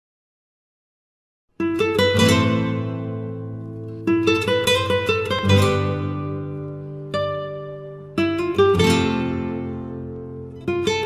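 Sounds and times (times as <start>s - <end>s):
acoustic guitar strumming: 1.6s - 11.0s.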